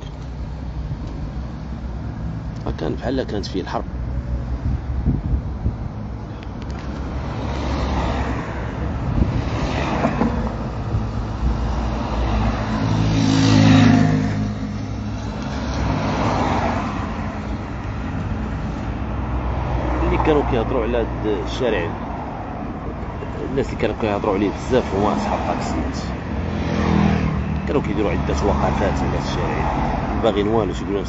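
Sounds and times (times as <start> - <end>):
car engine: 0.0 - 31.0
cars passing: 0.0 - 31.0.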